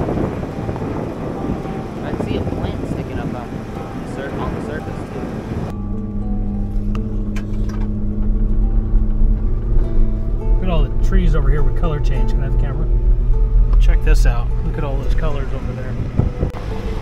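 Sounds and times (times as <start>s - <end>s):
low engine drone: 0.0s - 17.0s
rushing wind and road noise: 0.0s - 17.0s.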